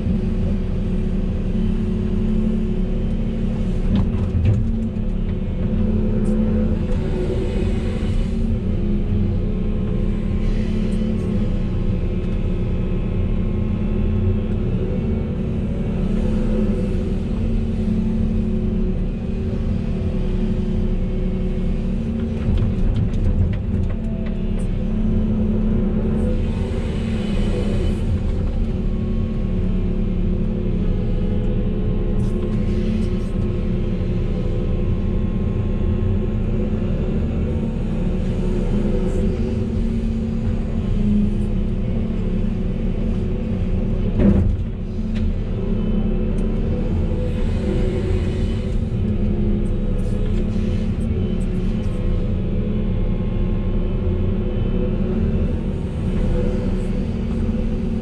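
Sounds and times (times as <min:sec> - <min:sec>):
excavator diesel engine droning: 0:00.0 - 0:58.0.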